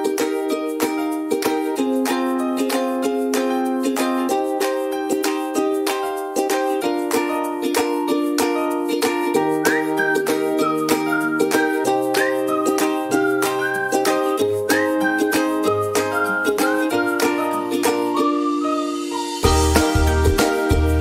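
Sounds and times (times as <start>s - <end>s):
high melody line: 0.0s - 21.0s
strummed plucked strings: 0.0s - 21.0s
bass line: 19.4s - 21.0s.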